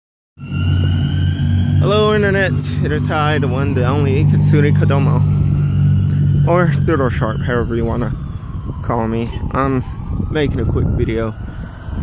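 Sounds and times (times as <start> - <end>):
rumble of passing vehicles: 0.4 - 12.0
man's voice: 1.8 - 5.3, 6.4 - 8.2, 8.8 - 11.4.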